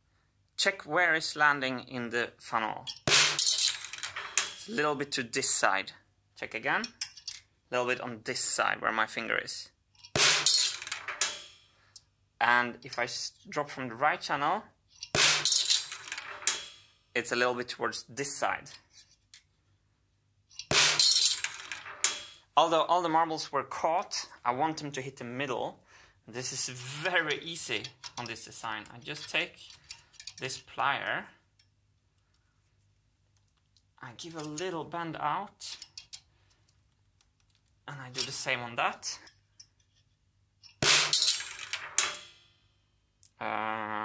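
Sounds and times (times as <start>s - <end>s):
marbles striking metal drum: 2.9s - 4.8s, 10.1s - 11.6s, 15.1s - 16.9s, 20.6s - 22.4s, 40.8s - 42.5s.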